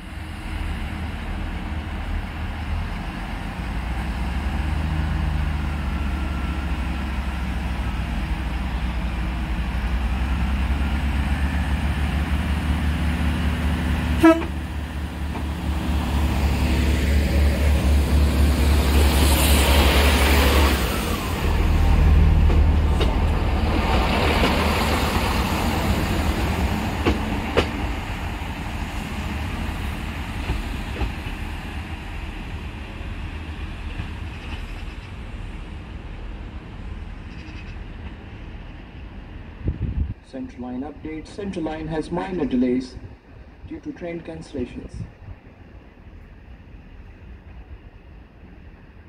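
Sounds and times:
wheel and rail noise: 0.0s - 44.0s
diesel train engines: 0.0s - 49.0s.

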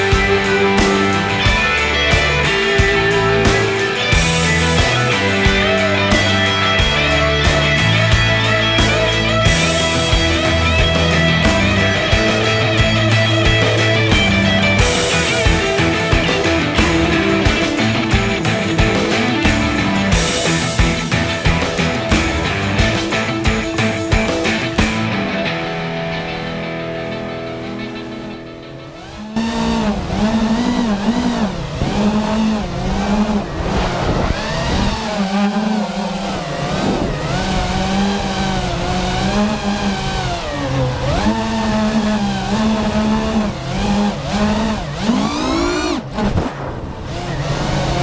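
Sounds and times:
drone motors whining: 0.0s - 25.7s, 27.5s - 48.0s
music: 0.0s - 48.0s.

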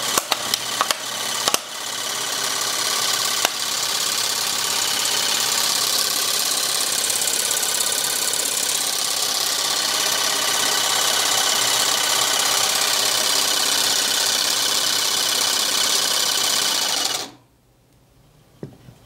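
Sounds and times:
air compressor running: 0.0s - 17.4s.

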